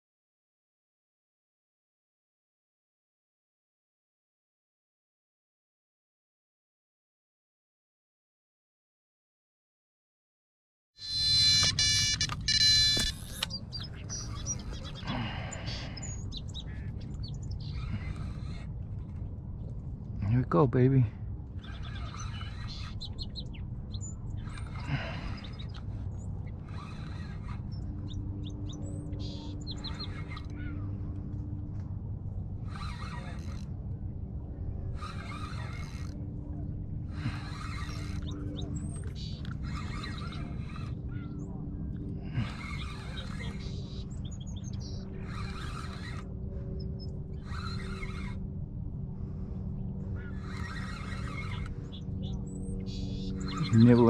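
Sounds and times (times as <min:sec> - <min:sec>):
songbirds chirping: 0:11.0 - 0:54.0.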